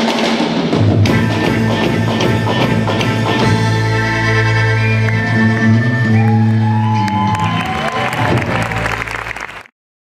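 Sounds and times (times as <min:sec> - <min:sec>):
live band holding final chord: 0:00.1 - 0:09.7
audience cheering and clapping: 0:04.8 - 0:09.7.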